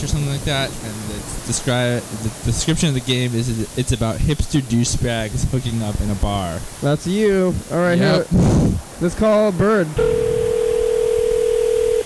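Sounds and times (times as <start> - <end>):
telephone ringback tone: 10.0 - 12.0.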